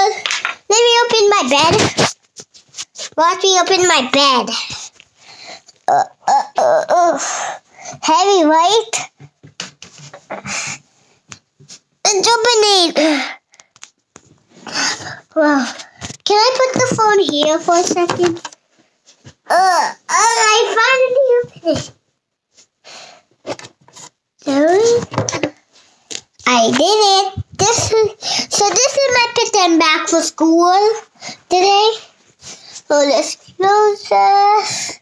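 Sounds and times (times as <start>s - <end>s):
rustling handling noises: 0.2s - 5.9s
child's strained breaths: 4.5s - 8.0s, 10.3s - 10.9s, 12.9s - 13.5s, 14.6s - 16.0s, 28.0s - 28.6s, 31.1s - 31.5s, 34.5s - 35.0s
child's drawn-out vocal sound: 5.9s - 8.5s, 19.5s - 21.9s.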